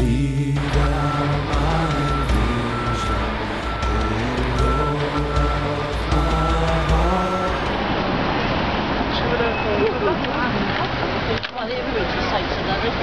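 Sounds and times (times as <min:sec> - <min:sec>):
music with low bass line: 0:00.0 - 0:07.8
electronic beep: 0:00.1 - 0:07.5.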